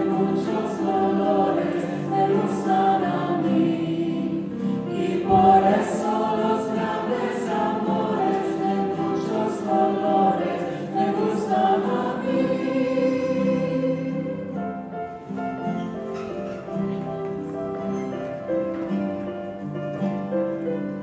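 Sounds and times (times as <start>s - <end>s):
mixed choir singing: 0.0s - 15.1s
grand piano: 0.0s - 21.0s.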